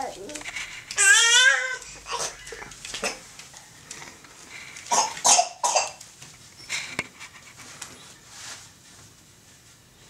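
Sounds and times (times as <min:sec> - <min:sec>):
person coughing: 0:04.9 - 0:06.0.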